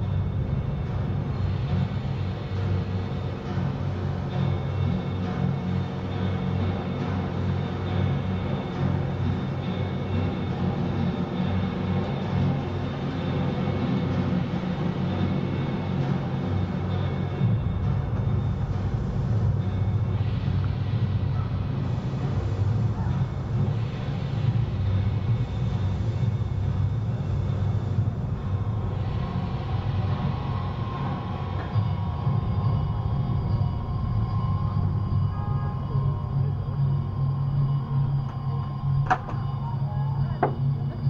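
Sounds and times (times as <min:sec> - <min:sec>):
city ambience rumble: 0:00.0 - 0:41.0
faint steady high tones: 0:00.0 - 0:41.0.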